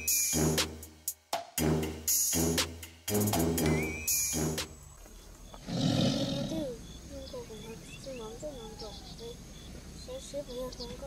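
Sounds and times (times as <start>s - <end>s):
tiger roaring: 5.6s - 6.8s.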